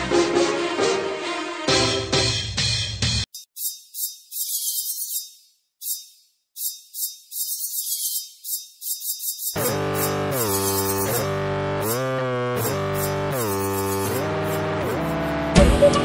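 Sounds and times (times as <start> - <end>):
sliding synthesizer notes: 9.6 - 16.0.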